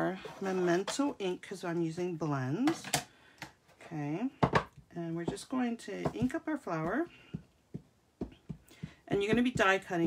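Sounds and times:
ink pad tapping on stamp: 0:06.0 - 0:10.0.

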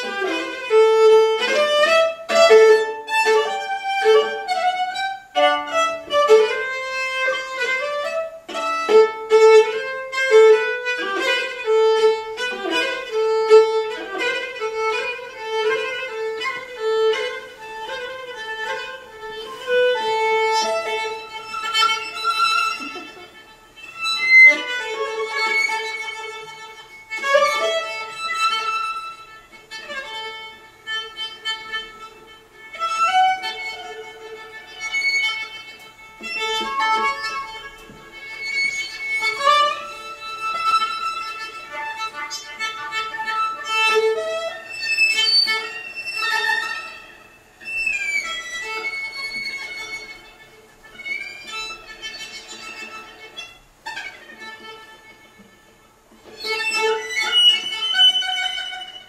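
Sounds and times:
bowed viola folk melody: 0:00.0 - 0:59.0.

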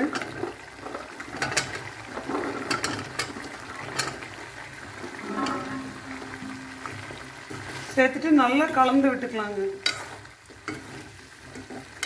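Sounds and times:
metal spatula scraping pan: 0:05.1 - 0:07.9.

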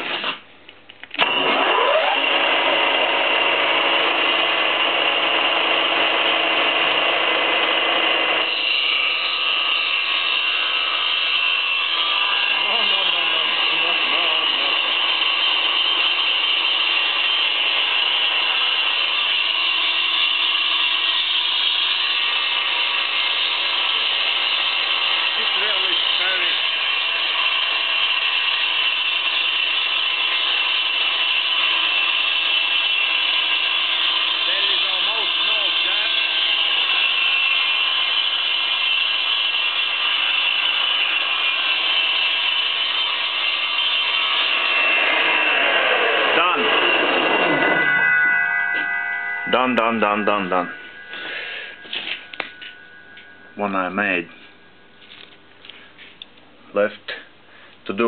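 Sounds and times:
saw blade spinning high whine: 0:01.2 - 0:56.0.

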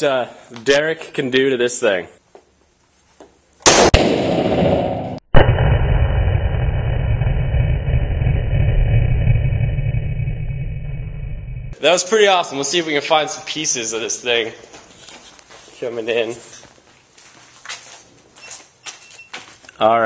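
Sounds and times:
sharp gun blast: 0:03.6 - 0:06.9
rifle shot echoing indoors: 0:03.7 - 0:05.2
muffled low rumble: 0:04.7 - 0:11.8.

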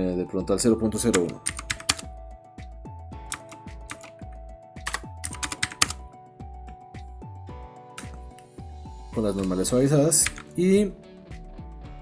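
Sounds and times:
background music with beat: 0:00.0 - 0:12.0
computer keyboard keystrokes: 0:01.1 - 0:02.1, 0:03.3 - 0:04.2, 0:04.8 - 0:06.0, 0:08.0 - 0:08.5, 0:10.2 - 0:10.6.

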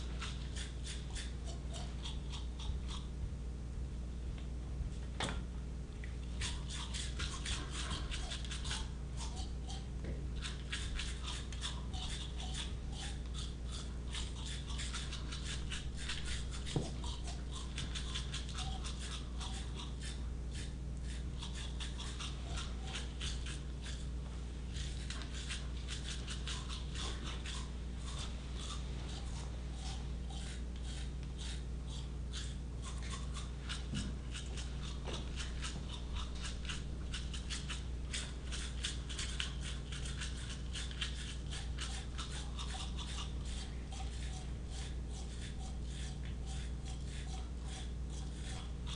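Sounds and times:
toothbrushes scrubbing teeth: 0:00.0 - 0:03.1, 0:06.3 - 0:48.9.

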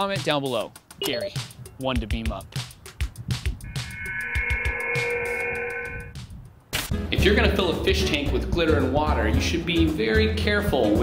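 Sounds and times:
background music with steady beat: 0:00.0 - 0:11.0
transporter beam sound effect: 0:03.6 - 0:06.1.

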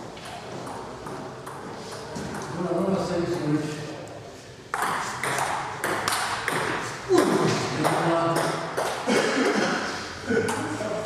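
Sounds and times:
ping pong ball clicking off paddles: 0:04.7 - 0:09.1.

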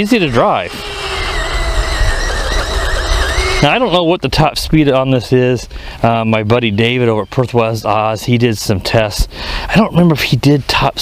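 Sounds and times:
electric motors whining: 0:00.0 - 0:04.2
low rumble: 0:00.0 - 0:06.7.

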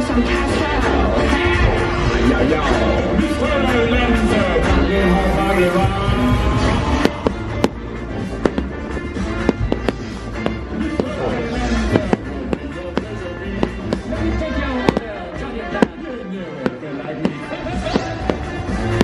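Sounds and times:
music over loudspeakers: 0:00.0 - 0:19.0
fireworks banging: 0:06.7 - 0:19.0.

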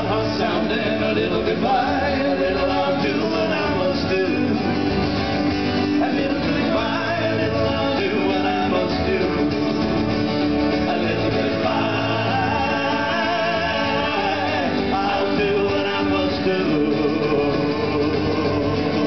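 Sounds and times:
men singing together: 0:00.0 - 0:05.0, 0:05.7 - 0:09.8, 0:10.6 - 0:19.0
electric bass: 0:00.0 - 0:19.0
strummed acoustic guitars: 0:00.0 - 0:19.0.

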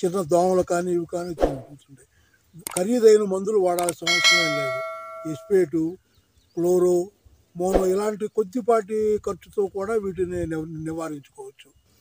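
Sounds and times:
notification bell chime: 0:04.1 - 0:05.7.

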